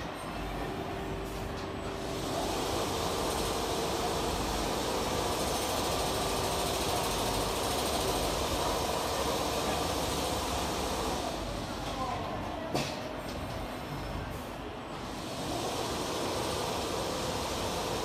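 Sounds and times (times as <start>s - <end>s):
quilting machine running: 15.1s - 18.0s.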